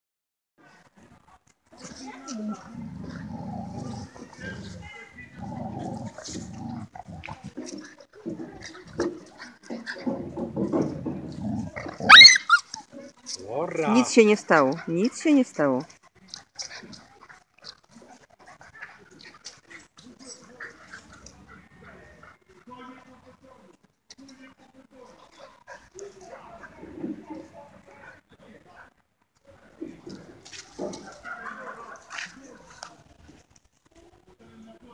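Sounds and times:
dogs play-growling: 0:01.8 - 0:12.9, 0:16.4 - 0:22.2
puppies whimpering and squeaking: 0:12.0 - 0:12.8.

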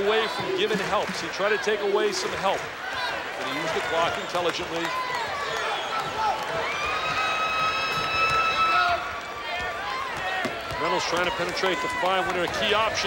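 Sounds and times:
arena crowd noise: 0:00.0 - 0:13.0.

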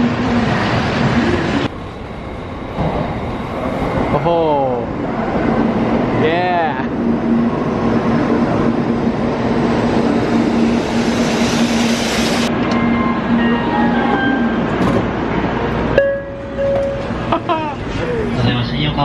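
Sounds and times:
train rush of air and rolling: 0:00.0 - 0:19.0.

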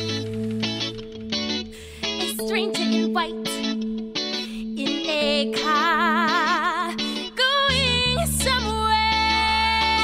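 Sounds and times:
guitar: 0:00.0 - 0:10.0
person singing with vibrato: 0:04.6 - 0:10.0.

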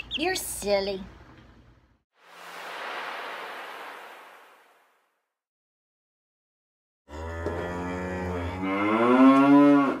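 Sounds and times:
long low moo-like call: 0:07.1 - 0:10.0.

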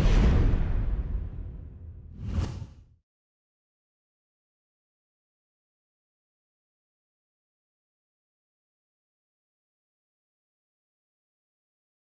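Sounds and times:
whoosh sound effect: 0:02.2 - 0:02.8.

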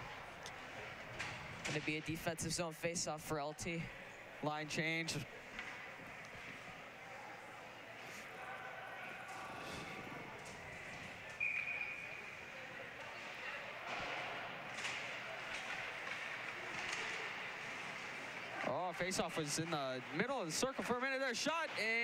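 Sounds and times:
distant players' voices echoing: 0:05.2 - 0:21.7.

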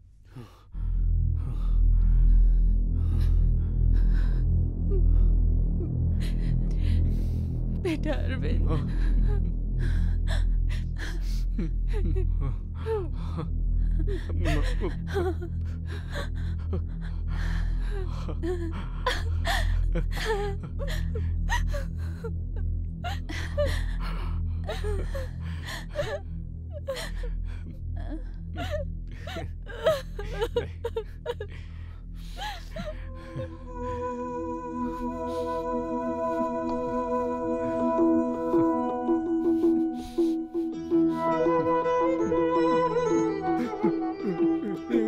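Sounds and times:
low musical drone: 0:00.3 - 0:45.0
person crying and sobbing: 0:03.0 - 0:45.0.

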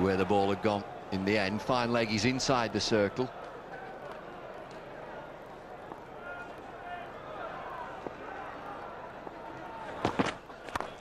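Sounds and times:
low crowd murmur: 0:00.0 - 0:11.0.

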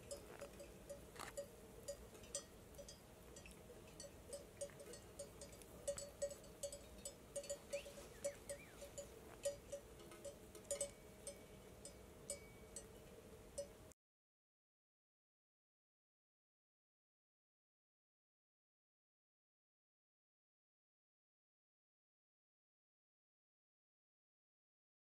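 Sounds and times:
sheep bells clinking: 0:00.0 - 0:13.8.

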